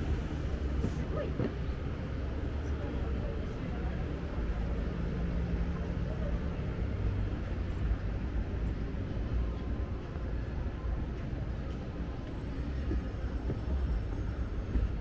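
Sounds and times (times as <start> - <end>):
city traffic rumble: 0.0 - 15.0
passersby voices: 0.0 - 15.0.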